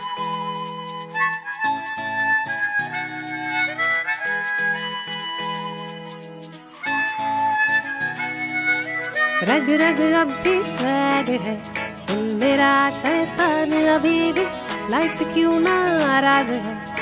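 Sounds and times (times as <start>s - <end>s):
harmonica melody: 0.0s - 17.0s.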